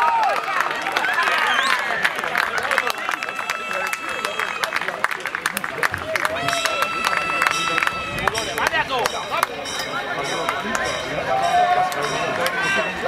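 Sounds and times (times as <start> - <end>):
spectators clapping and calling out: 0.0 - 13.0
long high tones: 6.3 - 13.0.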